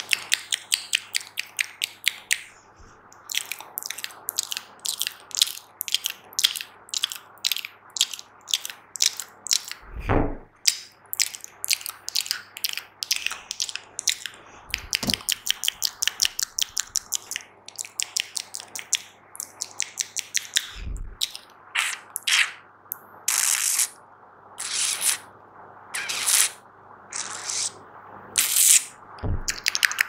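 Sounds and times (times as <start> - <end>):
low thump: 9.9 - 10.5, 29.2 - 29.5
wet mouth clicks and pops: 10.7 - 21.4, 29.4 - 30.0.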